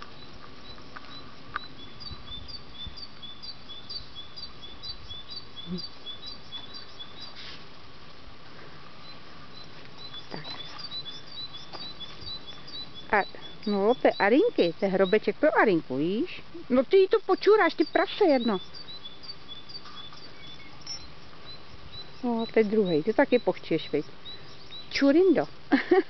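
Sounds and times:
songbird chirping: 0:00.0 - 0:26.0.

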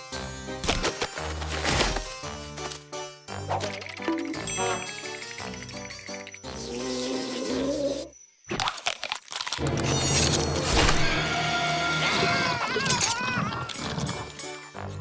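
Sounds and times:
cartoon music: 0:03.4 - 0:07.8
cartoon creatures screaming: 0:11.0 - 0:13.7.

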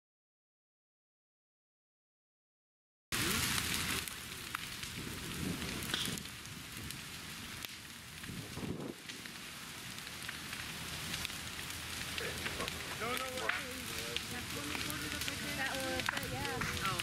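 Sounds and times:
fire crackling: 0:03.1 - 0:17.0
steady rushing of fire: 0:03.1 - 0:17.0.

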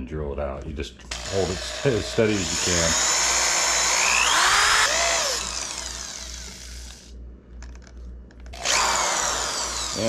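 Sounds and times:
drill with hole saw cutting: 0:01.1 - 0:07.1, 0:08.6 - 0:10.0.

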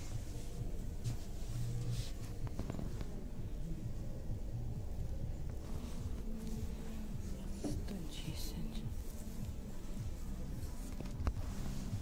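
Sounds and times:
clothing rustling on hanger: 0:00.0 - 0:03.2, 0:05.6 - 0:12.0
low rumble with hum: 0:00.0 - 0:12.0.

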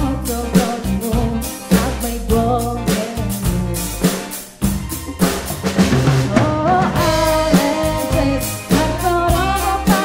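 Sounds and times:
band playing a song: 0:00.0 - 0:10.0
drum hit: 0:03.6 - 0:09.0.

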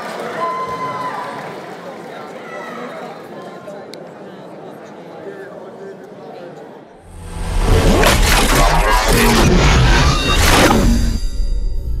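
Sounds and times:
murmur of crowd: 0:00.0 - 0:07.0
logo sting music with deep bass: 0:07.1 - 0:12.0
swooshing sound effects: 0:07.1 - 0:12.0.

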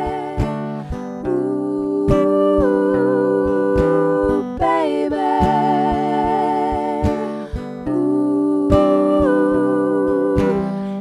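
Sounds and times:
women singing in harmony: 0:00.0 - 0:11.0.

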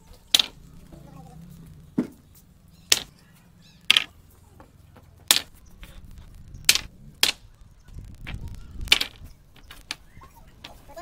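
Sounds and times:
plywood strips clacking on concrete: 0:00.1 - 0:11.0.

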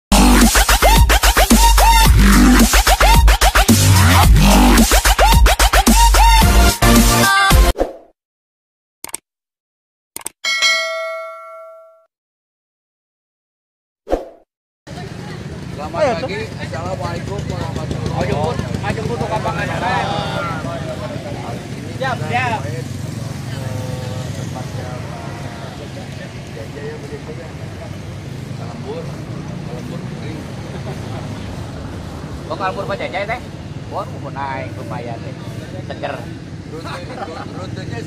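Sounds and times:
group of people chatting: 0:14.9 - 0:38.0.

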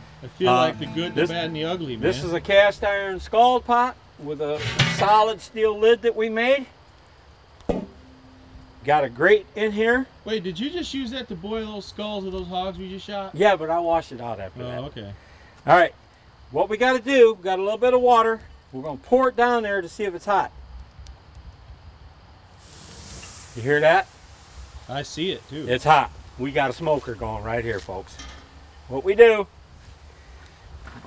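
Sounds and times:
faint steady tone: 0:00.0 - 0:16.6
metal lid clank: 0:04.6 - 0:05.1, 0:07.7 - 0:08.4, 0:28.1 - 0:28.6
water hissing into steam: 0:22.4 - 0:28.1.

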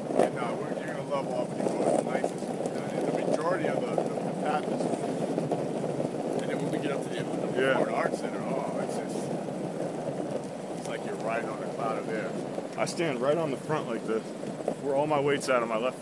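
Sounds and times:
faint muffled voices: 0:00.0 - 0:05.4, 0:06.3 - 0:09.4, 0:10.8 - 0:16.0
wheels rolling over rough asphalt: 0:00.0 - 0:16.0
wind on microphone: 0:00.0 - 0:16.0.

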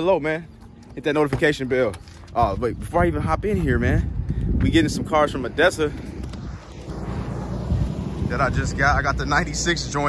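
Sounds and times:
wind buffeting microphone: 0:02.3 - 0:10.0.

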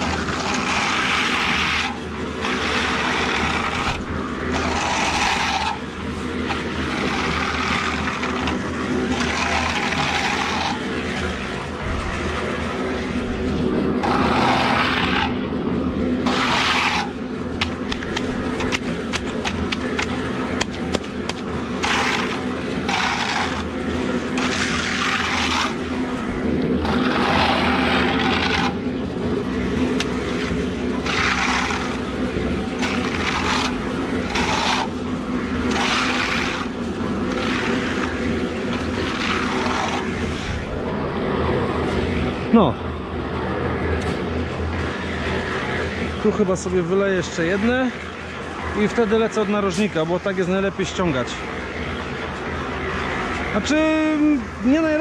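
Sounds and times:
hand float scraping wet concrete: 0:00.0 - 0:42.7, 0:43.5 - 0:55.0
low mechanical hum: 0:00.0 - 0:55.0.

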